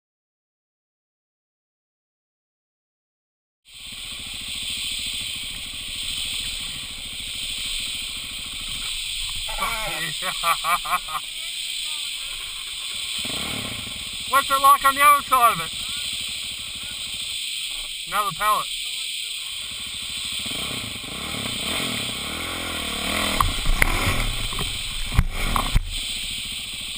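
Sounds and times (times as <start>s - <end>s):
dirt bike engine idling: 3.7s - 26.9s
steady hiss: 3.7s - 26.9s
man laughing: 9.4s - 13.1s
bike bumping over wood: 23.3s - 26.0s.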